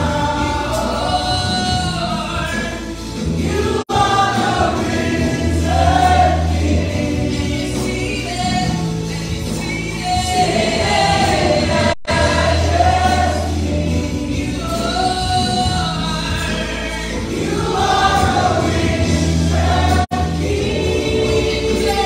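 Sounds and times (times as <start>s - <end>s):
band accompaniment: 0.0s - 22.0s
group singing gospel song: 0.0s - 22.0s.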